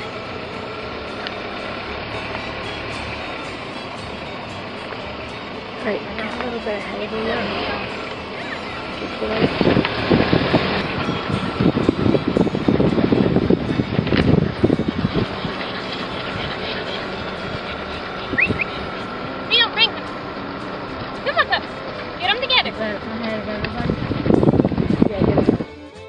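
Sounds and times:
wind buffeting microphone: 9.0 - 19.5, 20.2 - 25.7
microphone handling rumble: 9.1 - 19.2, 23.0 - 25.7
high chirping calls: 18.2 - 19.1.

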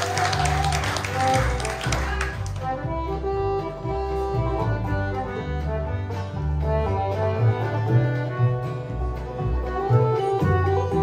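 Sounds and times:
band playing instrumental tune: 0.0 - 11.0.

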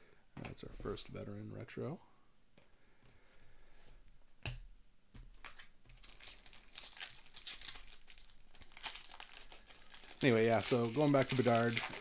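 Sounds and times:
foil wrapper tearing and crinkling: 5.4 - 12.0.

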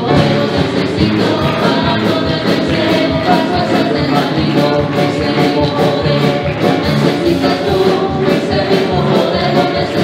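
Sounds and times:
musical accompaniment with steady beat: 0.0 - 10.0
women singing into microphones: 0.0 - 10.0.

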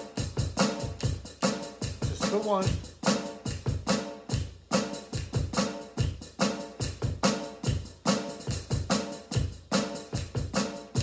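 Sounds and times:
drum kit played with sticks: 0.0 - 11.0.

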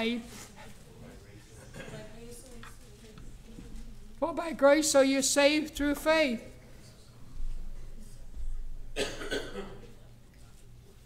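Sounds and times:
person coughing: 9.0 - 9.9.

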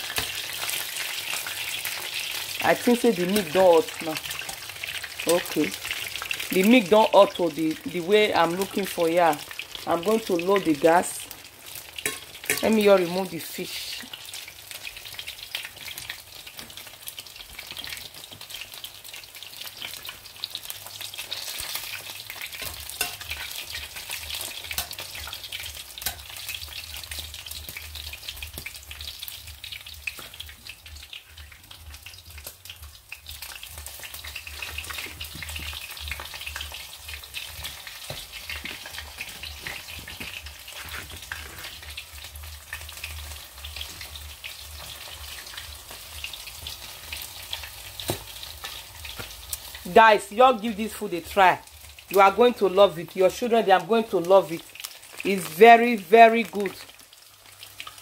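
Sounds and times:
food sizzling in hot oil: 0.0 - 58.0.

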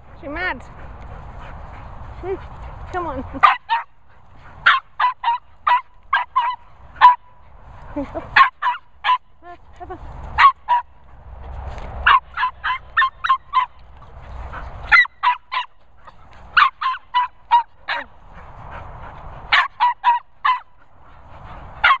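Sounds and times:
dog yapping: 3.4 - 3.9, 4.6 - 7.3, 8.4 - 9.3, 12.0 - 14.1, 14.8 - 18.1, 19.5 - 20.8.

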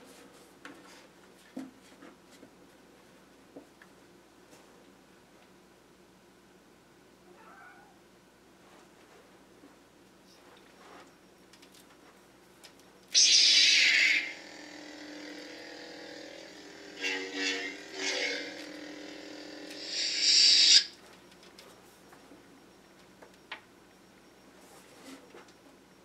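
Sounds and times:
lightsaber electric hum: 13.1 - 21.4
lightsaber swing: 13.2 - 15.2, 16.0 - 20.9
lightsaber ignition burst: 13.2 - 20.9
lightsaber retraction burst: 13.2 - 20.9.

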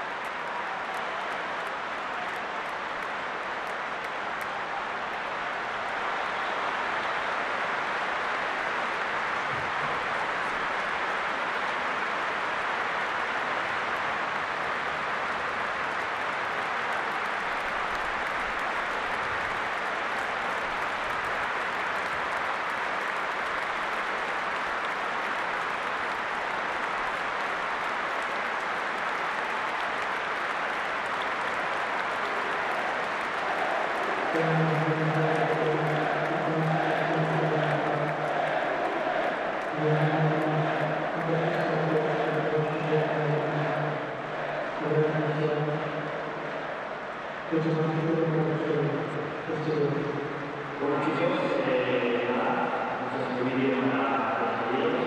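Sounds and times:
stadium crowd applauding and cheering: 0.0 - 55.0.

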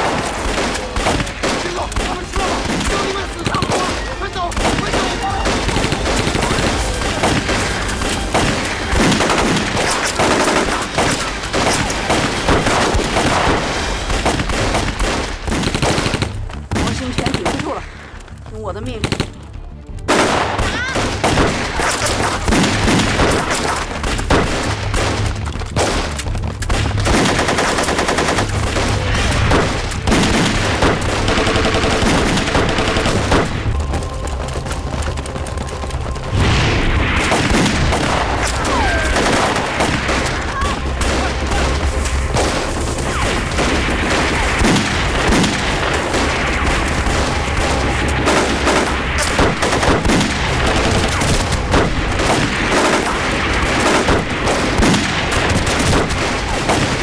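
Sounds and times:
rapid gunfire bursts: 0.0 - 17.9, 19.0 - 19.4, 20.1 - 36.4, 37.1 - 57.0.

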